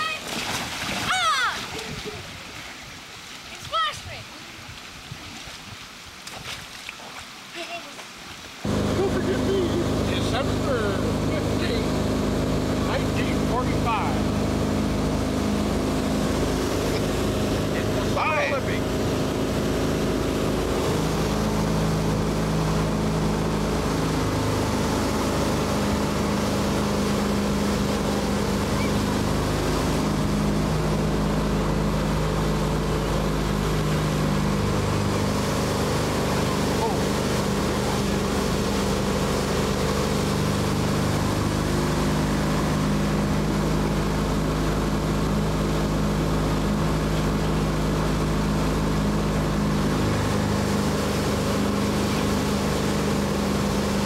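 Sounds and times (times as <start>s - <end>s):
speedboat engine running: 0.0s - 4.2s, 8.6s - 54.0s
faint splashing: 0.0s - 54.0s
rushing water and wind: 0.0s - 54.0s
voices: 8.7s - 14.4s, 16.8s - 19.3s, 34.9s - 38.8s.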